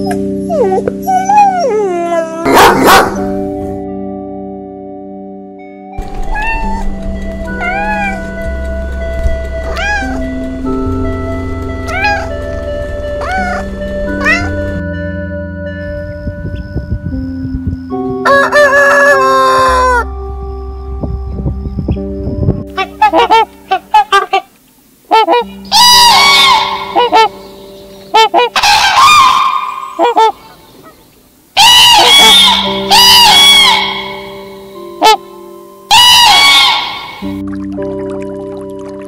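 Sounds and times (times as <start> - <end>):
faint background music: 0.0 - 4.5, 6.0 - 39.0
waterfowl honking: 9.6 - 10.4, 22.8 - 24.5, 25.1 - 31.0, 31.6 - 35.2, 35.9 - 37.4
rooster crowing: 18.2 - 20.1, 35.9 - 37.2.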